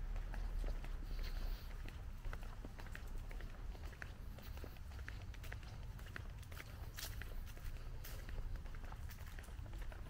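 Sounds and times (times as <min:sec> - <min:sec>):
footsteps on concrete: 0:00.0 - 0:10.0
steady low rumble: 0:00.0 - 0:10.0.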